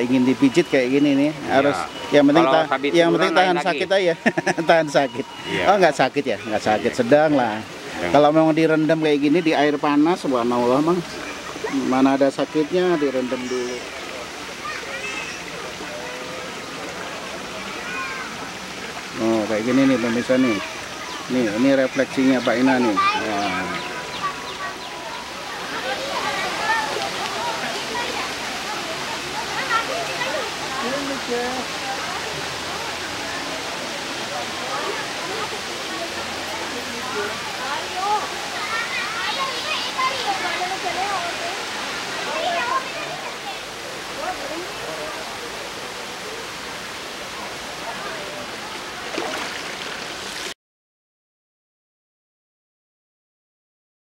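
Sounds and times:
people talking indistinctly: 0.0s - 48.7s
faint voices: 0.0s - 49.6s
water rushing: 0.0s - 50.6s.

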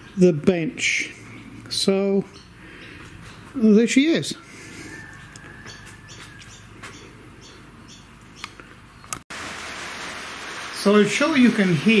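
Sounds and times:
rain hissing: 9.3s - 12.0s.

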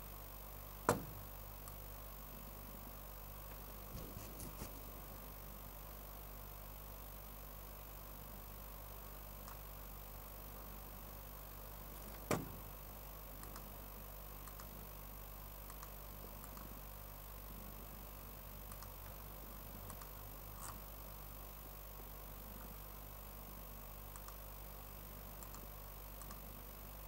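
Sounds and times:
low electrical hum: 0.0s - 27.0s
faint clicks: 13.4s - 13.7s, 14.4s - 14.7s, 15.6s - 16.7s, 18.7s - 19.2s, 19.8s - 20.8s, 24.1s - 24.4s, 25.4s - 26.4s.

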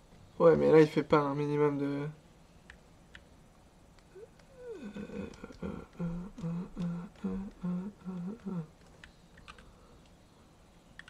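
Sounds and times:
man humming: 4.1s - 8.8s.

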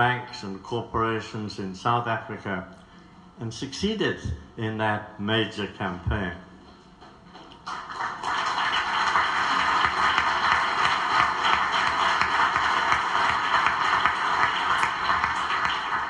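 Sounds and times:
audience applauding: 7.6s - 16.0s.

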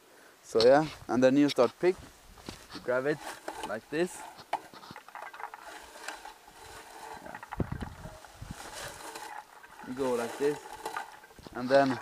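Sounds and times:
berry picker rustling through shrubs: 0.6s - 12.0s.

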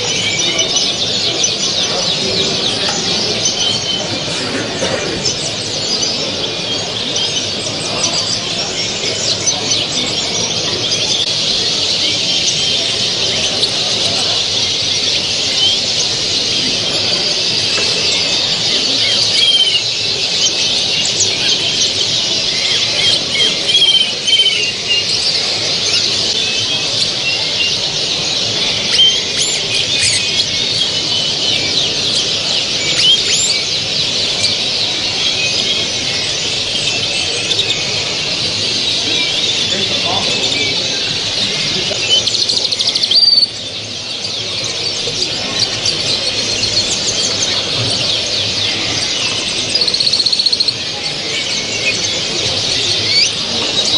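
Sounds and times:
finches chirping and trilling: 0.0s - 53.9s
low background murmur: 0.0s - 53.9s.

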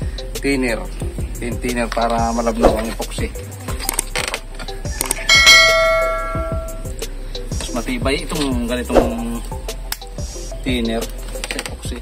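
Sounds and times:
notification bell chime: 5.3s - 6.8s.

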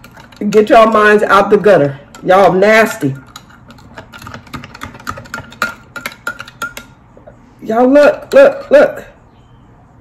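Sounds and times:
metal spoon clinking against glass: 0.0s - 1.4s, 2.1s - 7.0s, 7.8s - 9.2s.

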